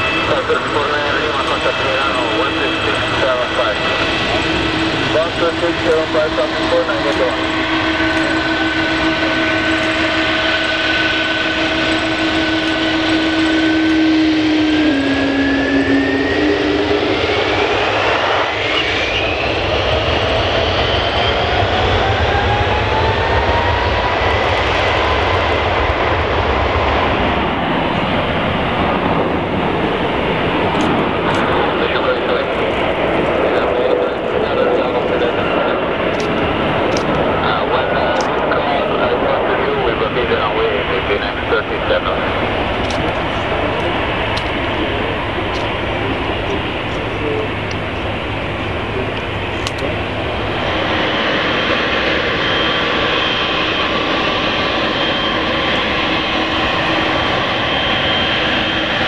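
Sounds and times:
deep engine rumble: 0.0 - 59.0
jet engine whine: 0.0 - 59.0.

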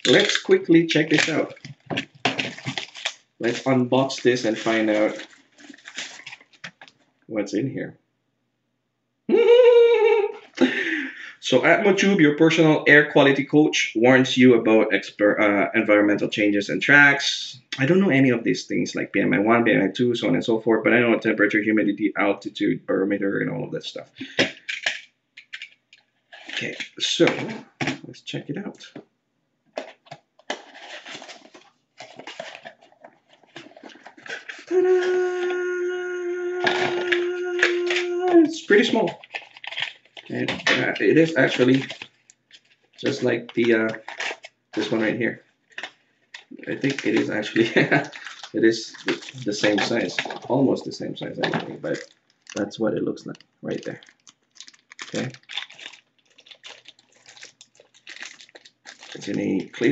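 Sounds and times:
packaging rustling and crinkling: 0.0 - 7.1, 29.7 - 35.6, 36.6 - 59.9.

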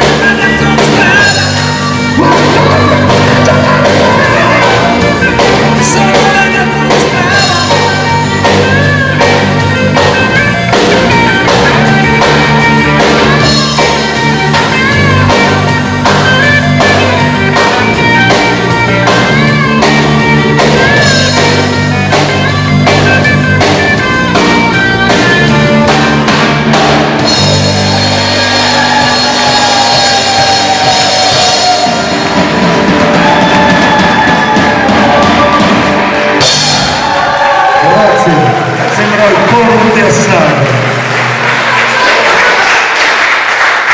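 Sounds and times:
drum kit beat: 0.0 - 41.5
electric bass: 0.0 - 42.2
electric guitar: 0.0 - 43.9.

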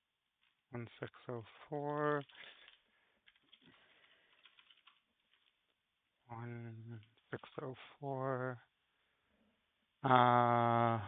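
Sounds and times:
faint keyboard typing: 1.7 - 5.8.

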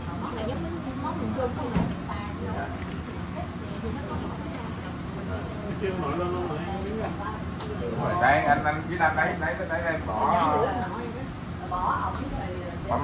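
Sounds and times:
indistinct conversation: 0.0 - 13.0.

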